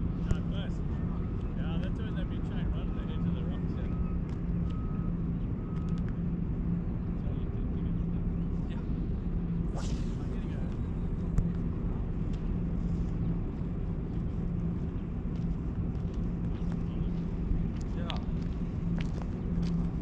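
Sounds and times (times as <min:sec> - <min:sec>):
low engine drone: 0:00.0 - 0:20.0
reversing alarm beeping: 0:02.8 - 0:06.3.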